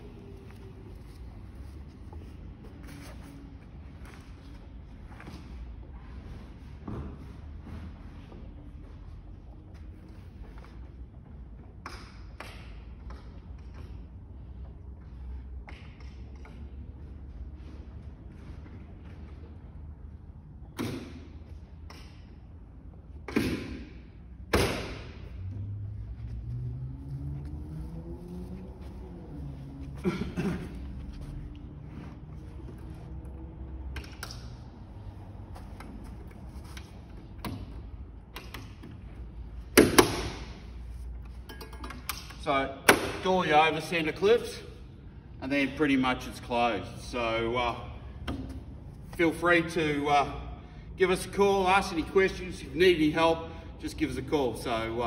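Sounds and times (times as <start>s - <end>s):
low room hum: 0.0s - 55.0s.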